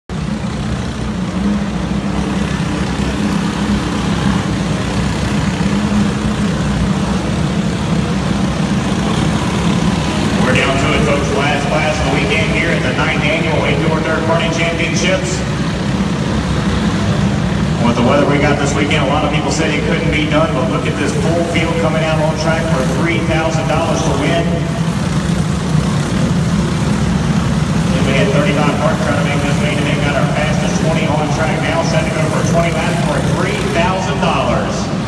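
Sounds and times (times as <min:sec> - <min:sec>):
racing kart engines droning: 0:00.1 - 0:35.0
rising and falling high engine sounds: 0:00.1 - 0:35.0.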